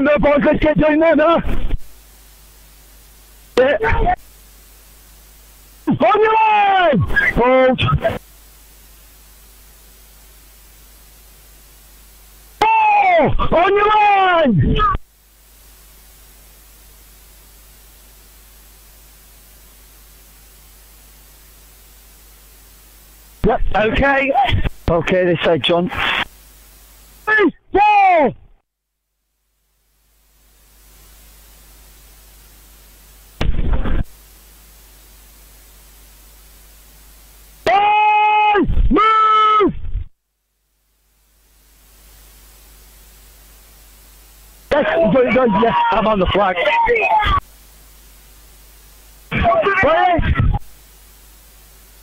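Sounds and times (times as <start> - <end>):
radio hiss: 0.0 - 52.0
voice over radio: 3.6 - 4.2, 5.9 - 8.2, 23.4 - 26.3, 44.7 - 47.4, 49.3 - 50.6
man shouting calls: 5.9 - 7.7, 12.6 - 14.9, 27.3 - 28.5, 37.6 - 39.7, 44.7 - 47.4, 49.3 - 50.3
man speaking: 23.4 - 26.2, 44.7 - 47.4.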